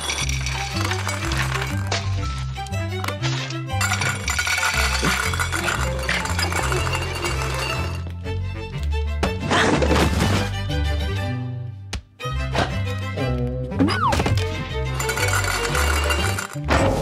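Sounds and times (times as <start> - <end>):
dry kibble clinking into metal bowl: 0.0 - 2.2, 3.8 - 8.0, 15.0 - 16.6.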